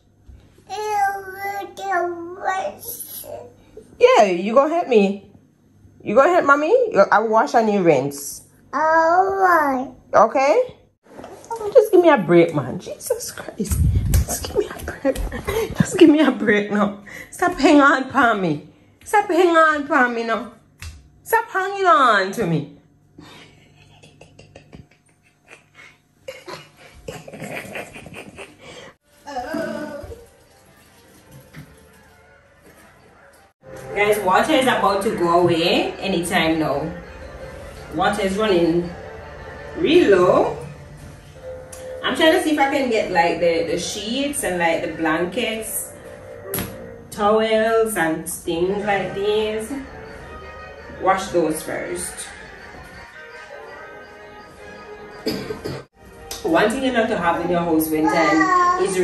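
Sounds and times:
toddler vocal sound: 8.8 - 9.9, 58.0 - 58.9
dishes and cutlery clinking: 55.2 - 56.0.

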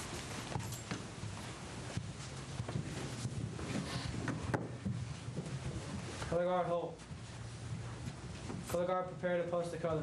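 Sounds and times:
marching footsteps: 0.0 - 10.0.

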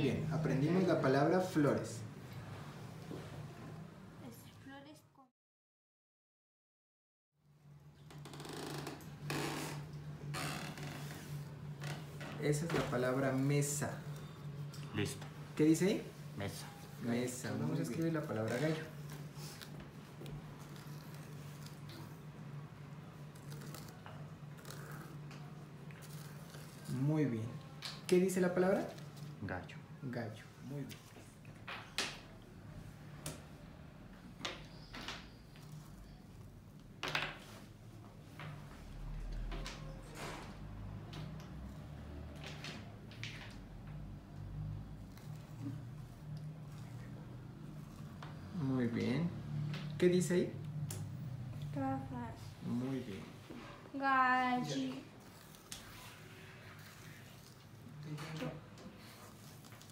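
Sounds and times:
steady low hum: 7.4 - 37.0.

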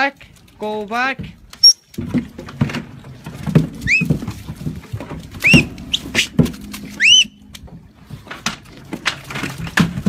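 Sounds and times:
sheep hooves scuffing in wet grass: 3.7 - 7.2.

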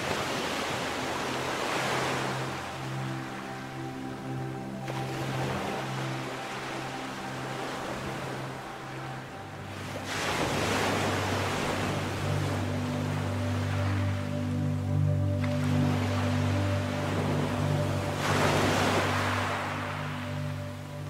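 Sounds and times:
ocean surf: 0.0 - 21.0
slow ambient music: 0.0 - 21.0.

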